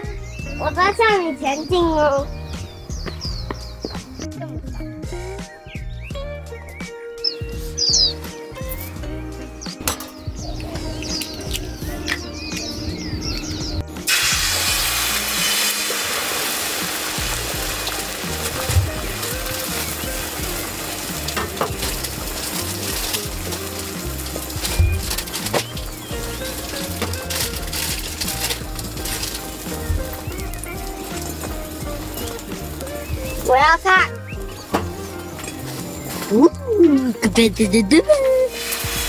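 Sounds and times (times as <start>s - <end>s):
background music: 0.0s - 39.0s
egg sizzling on a griddle: 14.0s - 33.5s, 38.5s - 39.0s.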